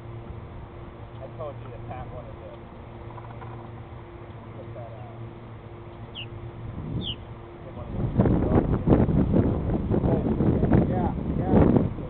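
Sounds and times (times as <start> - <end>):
wind buffeting microphone: 6.2 - 12.0.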